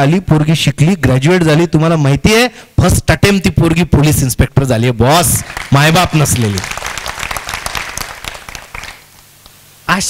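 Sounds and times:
audience applauding: 5.4s - 9.3s.

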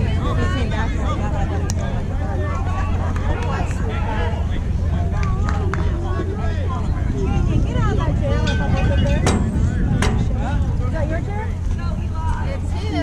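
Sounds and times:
indistinct voices: 0.0s - 13.0s
steady low rumble: 0.0s - 13.0s.

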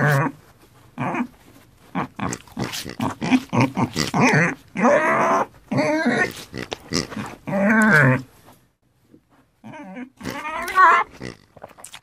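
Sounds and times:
pigs grunting: 1.9s - 8.3s, 9.6s - 11.8s
pig wavering call: 9.7s - 11.1s.

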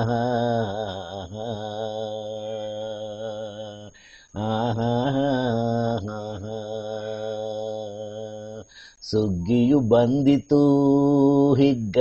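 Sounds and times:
man singing chant-like folk song: 0.0s - 12.0s.

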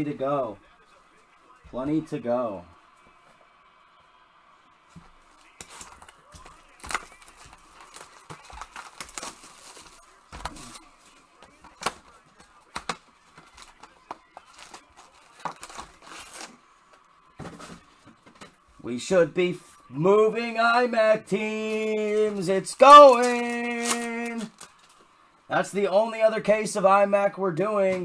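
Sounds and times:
wrappers crinkling and tearing: 5.4s - 16.6s, 22.8s - 25.0s.

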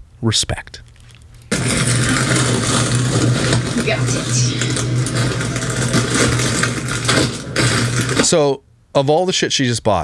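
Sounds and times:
shopping cart rolling: 1.5s - 8.5s.

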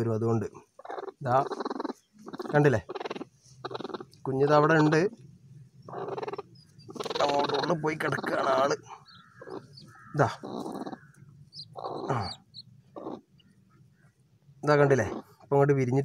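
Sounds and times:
hen growling and squawking: 0.0s - 15.5s.

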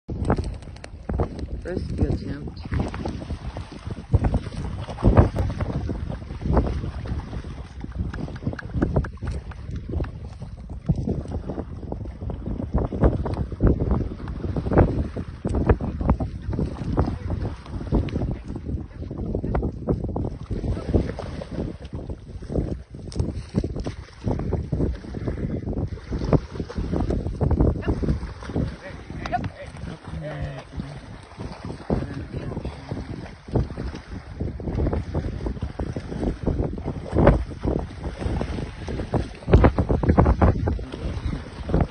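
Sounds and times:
splashing in shallow water: 0.1s - 41.9s
wind buffeting microphone: 0.1s - 41.9s.

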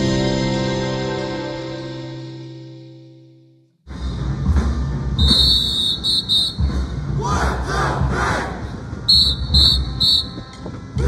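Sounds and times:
marching drumline cadence: 3.9s - 11.0s
whistle blasts: 5.2s - 7.0s, 9.1s - 10.6s.

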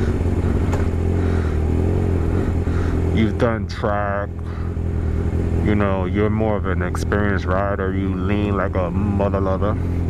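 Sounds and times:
motorcycle engine running steadily: 0.0s - 10.0s.

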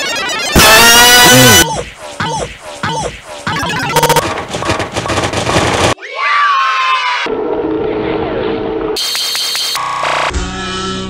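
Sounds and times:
harsh high buzz: 0.0s - 4.2s
held electronic tones: 0.0s - 4.2s.

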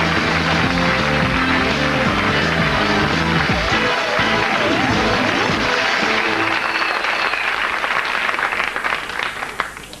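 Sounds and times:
closing theme music: 0.0s - 7.3s
studio audience applause: 0.0s - 10.0s.

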